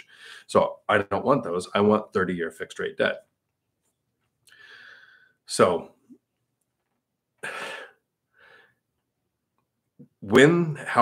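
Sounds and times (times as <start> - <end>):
man's breathy sounds: 7.4 - 8.8.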